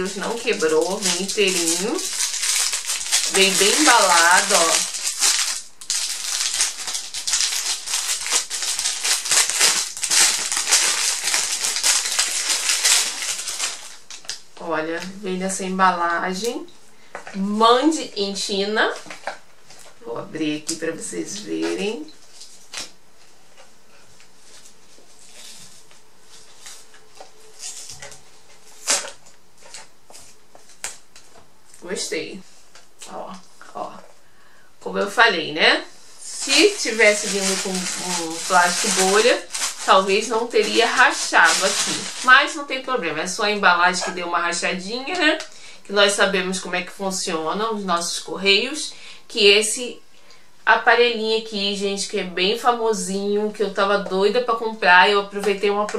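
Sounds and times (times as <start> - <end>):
plastic packaging crinkling: 0.0 - 14.6, 21.6 - 31.8, 36.2 - 44.2.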